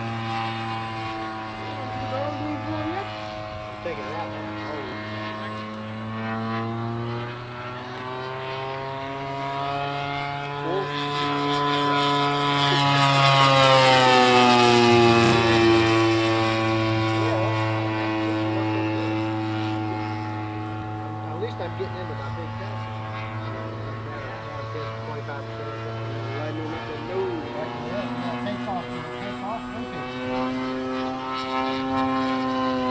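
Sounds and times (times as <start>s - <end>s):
model airplane engine and propeller: 0.0s - 32.9s.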